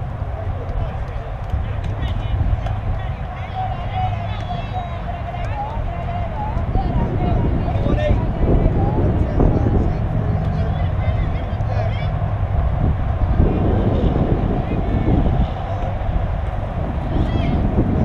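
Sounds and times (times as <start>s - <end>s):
faint distant voices: 0.0s - 18.0s
wind rumbling on microphone: 0.0s - 18.0s.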